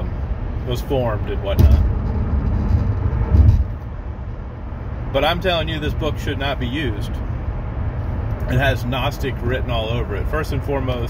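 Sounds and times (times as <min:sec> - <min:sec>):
road and wind rumble in car: 0:00.0 - 0:11.0.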